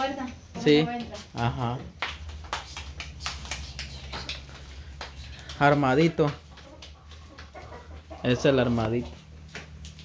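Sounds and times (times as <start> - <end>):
hands patting dough: 1.8 - 7.6.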